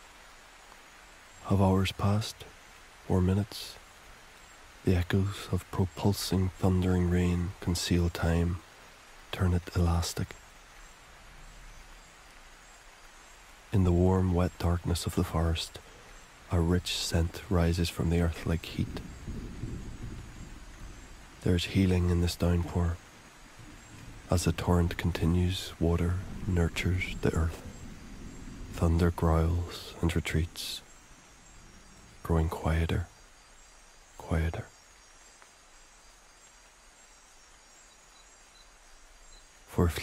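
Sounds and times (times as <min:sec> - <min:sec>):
insect calls: 0:00.0 - 0:40.0
low even hiss: 0:00.0 - 0:40.0
rain: 0:00.0 - 0:40.0
distant thunder rumbling: 0:18.3 - 0:32.3.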